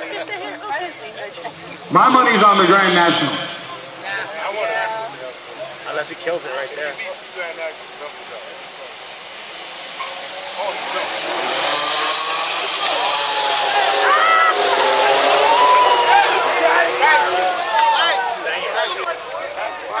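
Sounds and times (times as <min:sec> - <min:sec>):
car engines accelerating: 0:00.0 - 0:20.0
spectators shouting and cheering: 0:01.9 - 0:05.1, 0:10.8 - 0:20.0.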